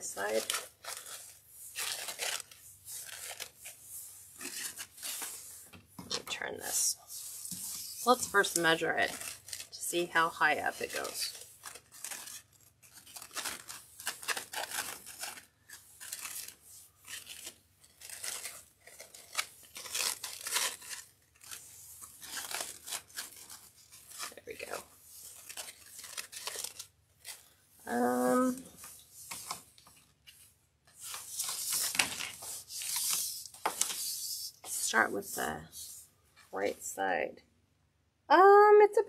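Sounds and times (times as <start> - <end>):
ribbon rustling and crinkling: 0.0 - 36.7.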